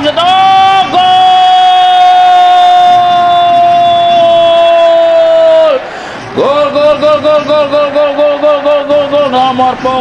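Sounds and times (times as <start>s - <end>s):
man shouting: 0.0s - 5.8s.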